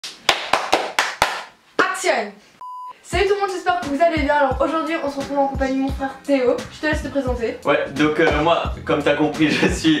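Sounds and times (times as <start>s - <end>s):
hand claps: 0.0s - 1.6s.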